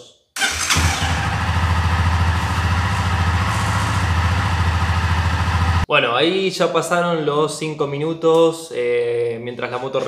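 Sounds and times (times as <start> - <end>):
motorcycle engine idling: 0.4 - 5.9.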